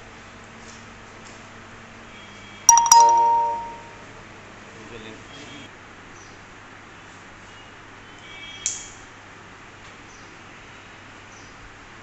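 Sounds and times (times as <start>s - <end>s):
bell-like chime: 2.7s - 4.0s.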